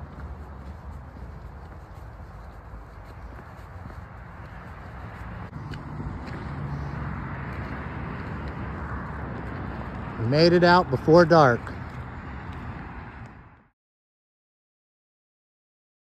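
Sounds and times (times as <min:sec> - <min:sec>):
footsteps on dirt trail: 0:00.0 - 0:13.7
road traffic noise: 0:00.0 - 0:13.7.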